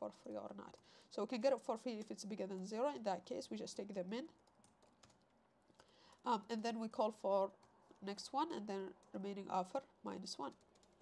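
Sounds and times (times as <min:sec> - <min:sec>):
keyboard keystrokes: 0:04.4 - 0:05.3, 0:10.5 - 0:11.0.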